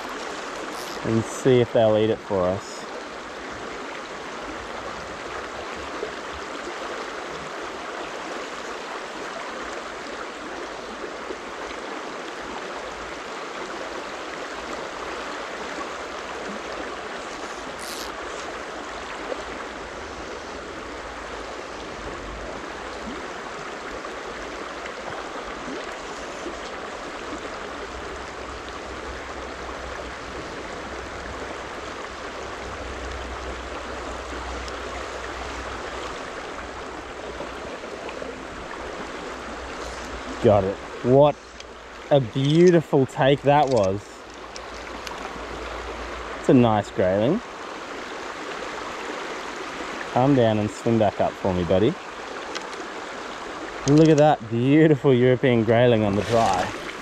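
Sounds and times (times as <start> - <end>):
stream babbling over stones: 0.0 - 57.0.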